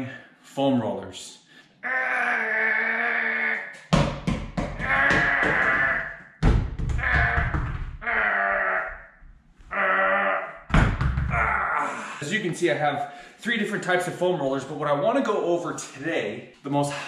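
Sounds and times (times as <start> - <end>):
foam rollers knocking on tile floor: 3.9 - 7.9.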